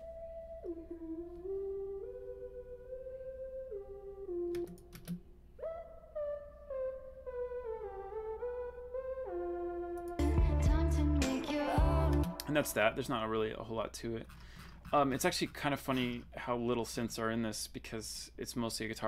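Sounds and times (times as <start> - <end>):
analog synth slow melody: 0.0 - 13.0.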